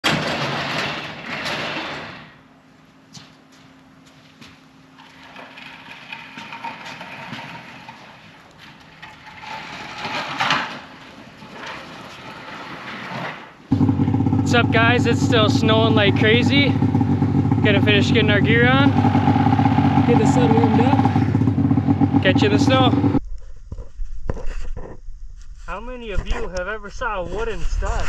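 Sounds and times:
garage door opener motor hum: 0:00.0 - 0:02.6, 0:04.8 - 0:14.3.

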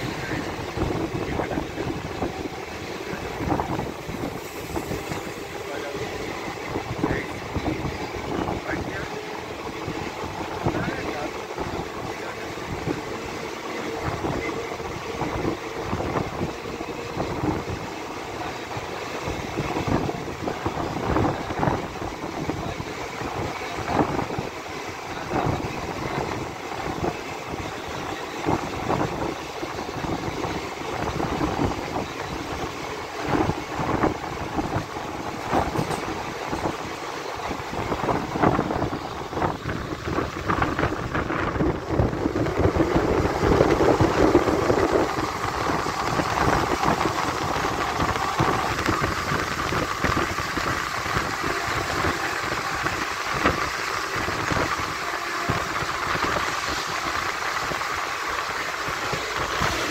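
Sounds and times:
goods train rushing past: 0:00.0 - 0:59.9
train wheels clattering over rails: 0:00.0 - 0:59.9.

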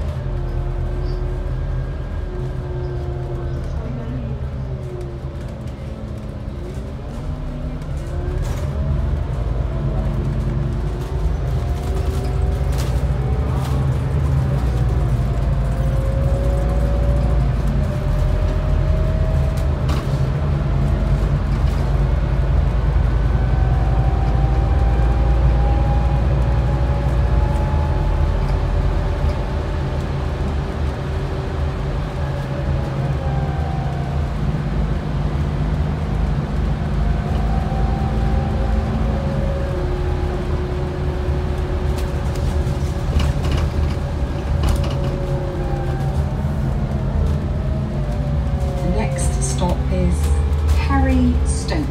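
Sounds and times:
bus engine and road rumble: 0:00.0 - 0:51.9.

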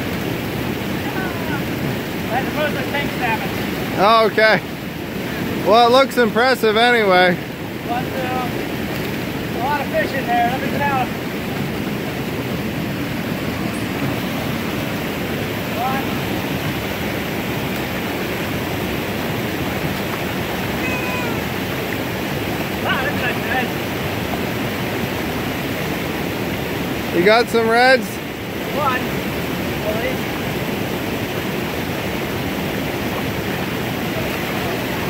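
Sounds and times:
creek water over waterfall: 0:00.0 - 0:35.0.

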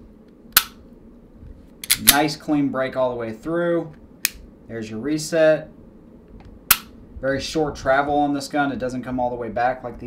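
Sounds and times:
pistol dry-fire click: 0:00.6 - 0:00.8, 0:01.8 - 0:02.2, 0:06.7 - 0:06.9
pistol slide racking clacks: 0:01.8 - 0:02.2.

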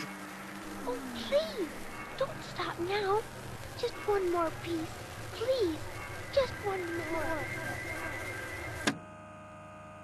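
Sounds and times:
quieter steady hum: 0:00.0 - 0:10.0
steady multi-tone hum: 0:00.0 - 0:10.0.

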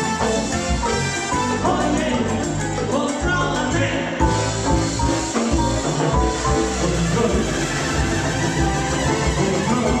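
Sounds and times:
live salsa band playing: 0:00.0 - 0:10.0.

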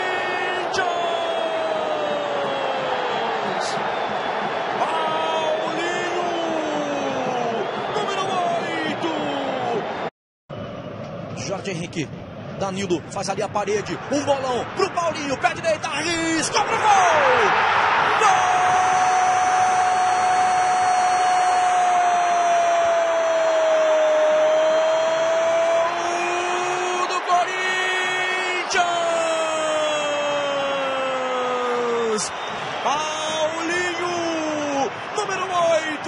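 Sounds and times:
stadium crowd noise: 0:00.0 - 0:36.0
excited commentary: 0:04.8 - 0:09.9, 0:12.6 - 0:20.0, 0:24.8 - 0:36.0.

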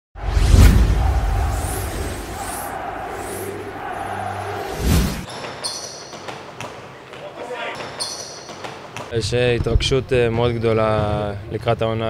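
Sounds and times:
low boom: 0:00.2 - 0:03.1
synth tones and swishes: 0:00.2 - 0:05.3.

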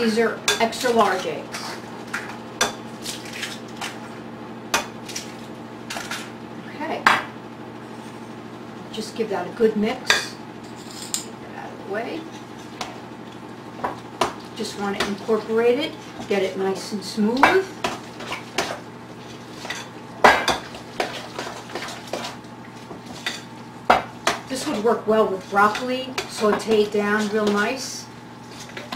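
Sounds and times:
faint room hum: 0:00.0 - 0:28.9.

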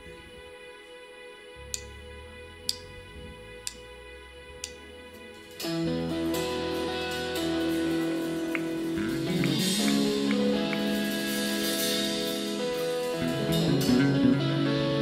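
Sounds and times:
sharp count-in clicks: 0:03.6 - 0:03.9, 0:04.6 - 0:04.9
church band playing: 0:04.7 - 0:15.0.

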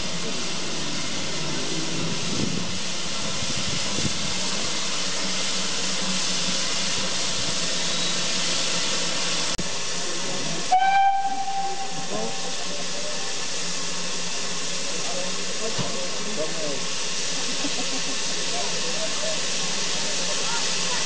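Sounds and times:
steam hissing from locomotive: 0:00.0 - 0:21.0
steam locomotive whistle: 0:10.7 - 0:13.3.

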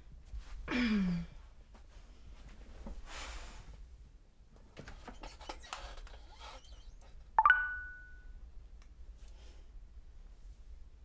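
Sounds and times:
smartphone rising chime: 0:07.4 - 0:08.3.

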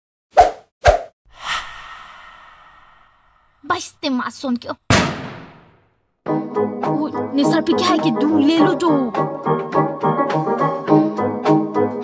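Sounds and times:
whoosh: 0:00.4 - 0:03.6.

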